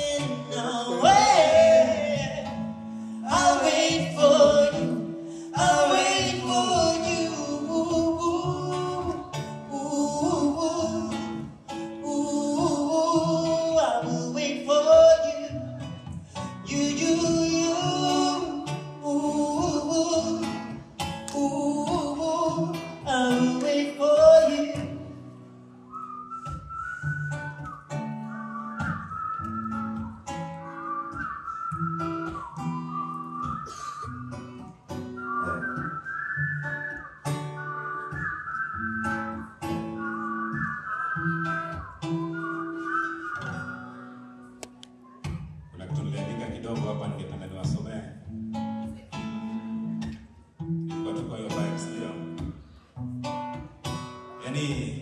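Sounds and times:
men singing wordless phrases: 0.0 - 11.2
acoustic guitar: 0.0 - 55.0
whistled melody: 25.7 - 45.3.

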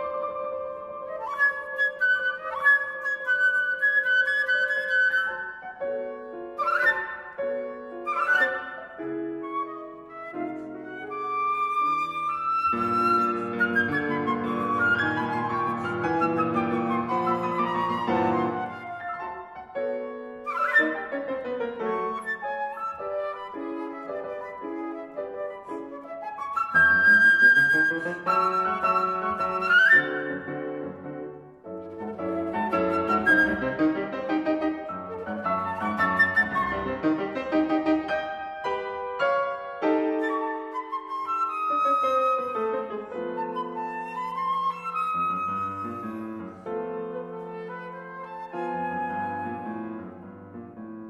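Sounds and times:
flute playing: 0.0 - 50.7
grand piano playing: 0.0 - 51.0.

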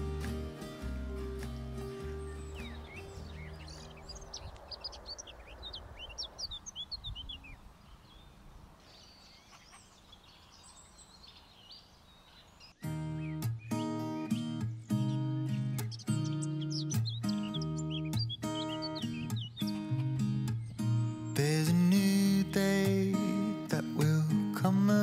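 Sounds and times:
song: 0.0 - 3.6
acoustic guitar music: 0.0 - 4.3, 12.8 - 25.0
small birds chirping and singing: 0.0 - 25.0.

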